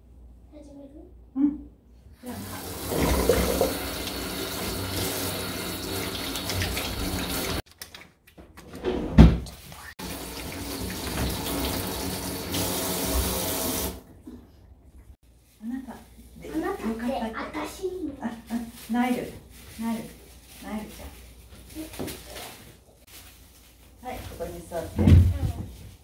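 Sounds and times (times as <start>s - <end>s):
hands being washed: 2.3s - 8.7s, 9.4s - 14.0s
tap water splashing into sink: 2.7s - 7.6s, 10.0s - 14.0s.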